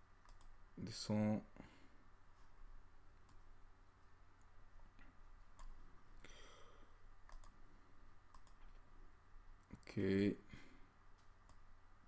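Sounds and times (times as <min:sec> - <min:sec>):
low background hiss: 0:00.0 - 0:12.0
computer mouse clicks: 0:00.2 - 0:00.6, 0:03.2 - 0:03.4, 0:05.5 - 0:05.8, 0:07.2 - 0:07.6, 0:08.3 - 0:08.8, 0:11.4 - 0:11.7.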